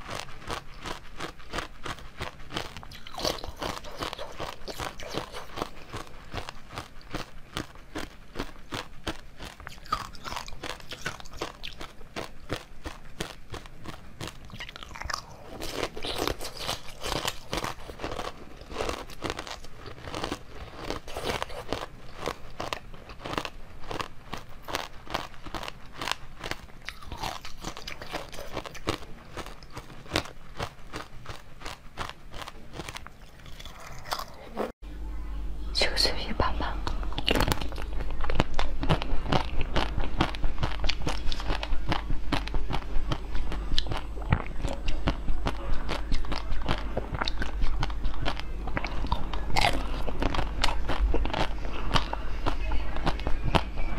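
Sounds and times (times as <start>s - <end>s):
ice crunching while chewed: 0.0s - 34.7s, 37.1s - 53.9s
steady low hum: 0.0s - 53.9s.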